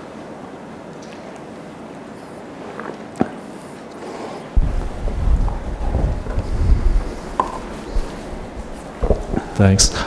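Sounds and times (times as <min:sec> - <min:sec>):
microphone handling noise: 0:04.6 - 0:09.7.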